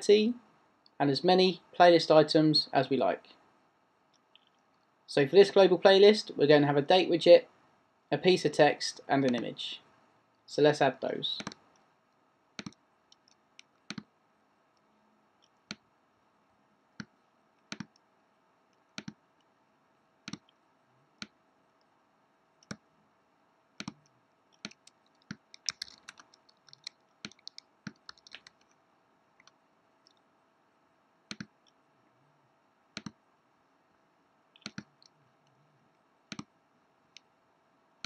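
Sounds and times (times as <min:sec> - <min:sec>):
faint steady hum: 0:00.0 - 0:38.0
computer mouse clicking: 0:11.4 - 0:11.9, 0:12.6 - 0:14.1, 0:17.0 - 0:18.1, 0:18.7 - 0:19.5, 0:20.2 - 0:20.6, 0:22.6 - 0:22.8, 0:23.8 - 0:28.8, 0:29.4 - 0:30.2, 0:31.3 - 0:31.8, 0:33.0 - 0:33.2, 0:34.6 - 0:35.6, 0:36.3 - 0:36.5.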